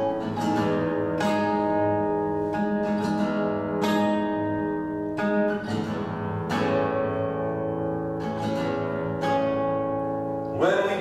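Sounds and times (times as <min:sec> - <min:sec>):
acoustic guitar chords ringing: 0:00.0 - 0:11.0.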